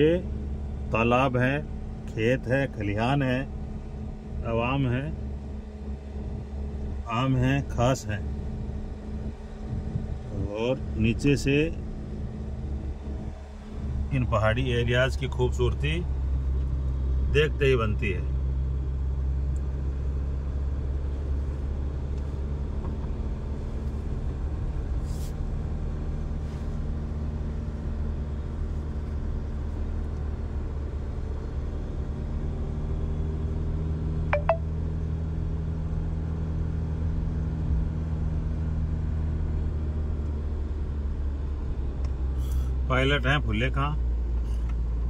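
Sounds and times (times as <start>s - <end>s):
car engine hum: 0.0s - 45.0s
road rumble: 0.0s - 45.0s.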